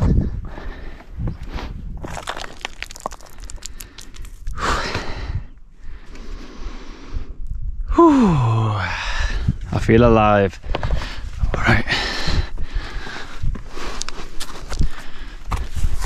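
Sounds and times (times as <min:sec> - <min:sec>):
heavy breathing: 0:00.0 - 0:01.8, 0:03.2 - 0:07.4, 0:10.7 - 0:15.8
footsteps on rock: 0:00.9 - 0:05.1, 0:10.6 - 0:11.8
person sighing: 0:07.9 - 0:09.3.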